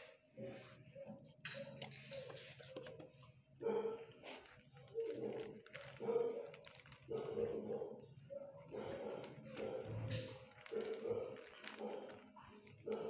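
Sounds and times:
dog barking: 0:00.4 - 0:02.9, 0:03.6 - 0:13.0.

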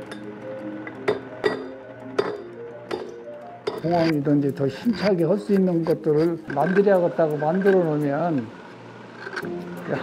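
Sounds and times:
background music with sustained notes: 0:00.0 - 0:10.0.

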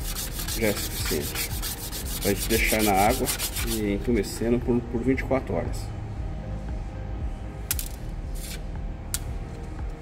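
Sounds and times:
seeds rubbed on sandpaper: 0:00.0 - 0:03.8
low background hum: 0:00.0 - 0:10.0.

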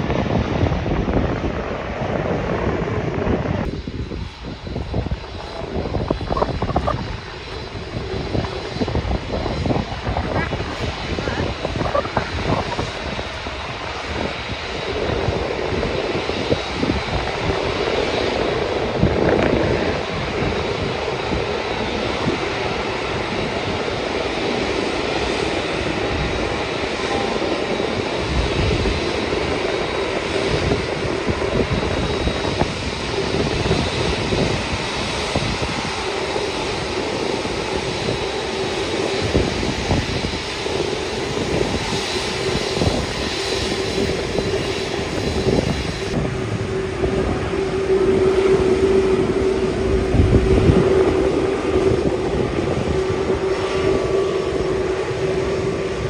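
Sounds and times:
jet engines rumbling: 0:00.0 - 0:56.0.

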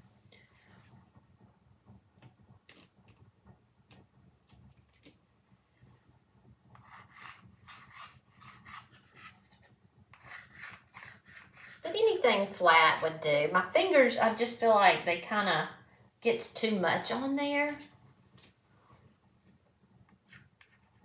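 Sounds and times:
scratchy rubbing strokes: 0:06.8 - 0:13.1.

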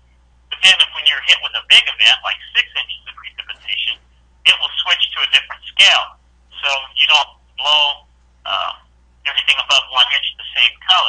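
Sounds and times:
man talking over telephone line: 0:00.5 - 0:11.0.

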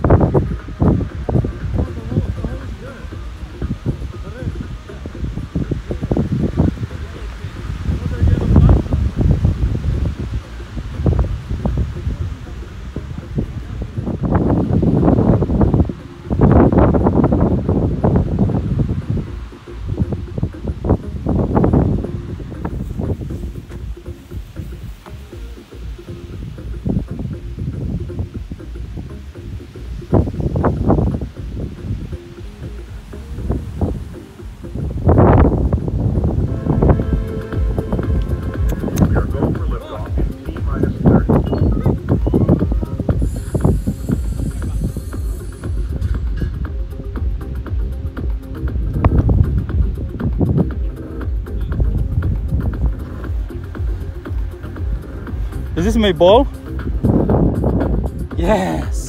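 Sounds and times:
background music: 0:00.0 - 0:59.0
wind rumbling on microphone: 0:00.0 - 0:59.0.

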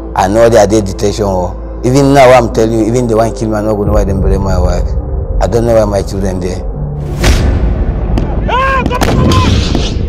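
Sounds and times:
man shouting: 0:08.4 - 0:09.5.

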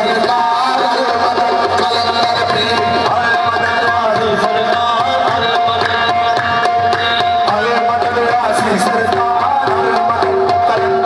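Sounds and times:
harmonium drone chords: 0:00.0 - 0:11.0
low tabla bass: 0:00.0 - 0:11.0
men singing: 0:00.0 - 0:11.0.

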